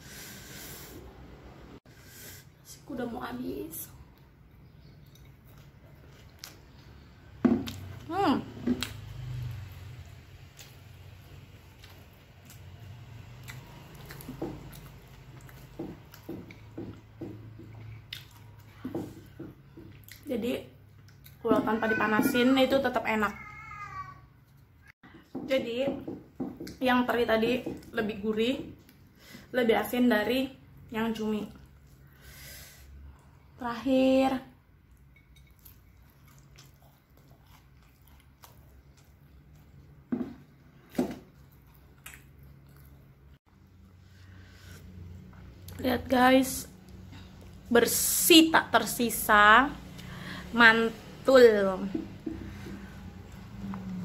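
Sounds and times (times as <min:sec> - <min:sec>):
person chewing food: 0:04.1 - 0:08.0, 0:10.4 - 0:20.3, 0:34.8 - 0:45.8, 0:52.5 - 0:54.0.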